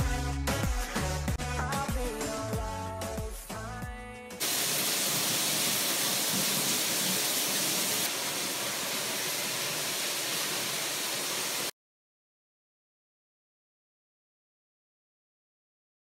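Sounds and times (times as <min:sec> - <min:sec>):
music: 0:00.0 - 0:04.4
running water hiss: 0:04.4 - 0:11.7.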